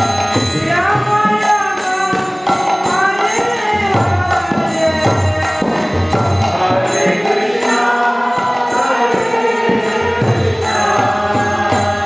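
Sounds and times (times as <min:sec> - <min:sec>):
ringing hand cymbals: 0:00.0 - 0:12.0.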